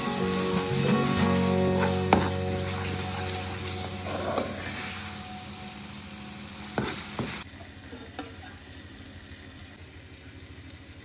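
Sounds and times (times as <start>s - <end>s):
light sizzle: 0.0s - 11.0s
spoon stirring paste in pan: 1.8s - 3.3s.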